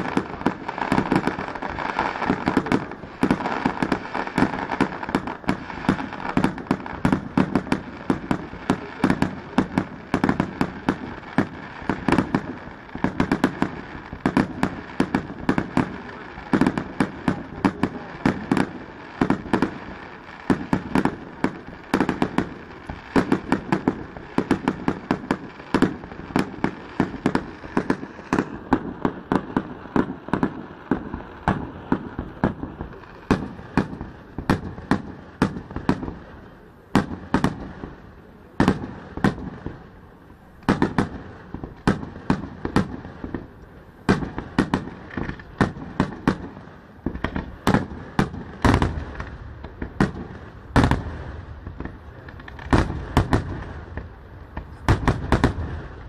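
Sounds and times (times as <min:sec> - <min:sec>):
fireworks bangs and crackling: 0:00.0 - 0:56.0.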